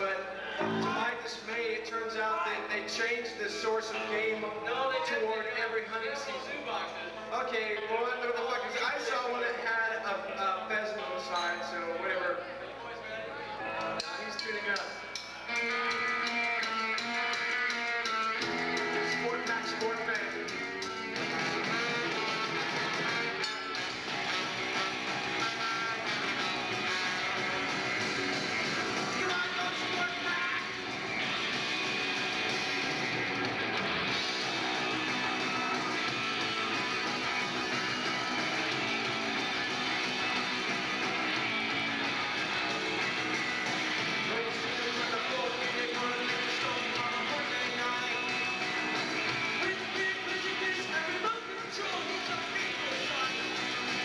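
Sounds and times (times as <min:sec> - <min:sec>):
live rock band playing: 0:00.6 - 0:01.1, 0:15.1 - 0:54.0.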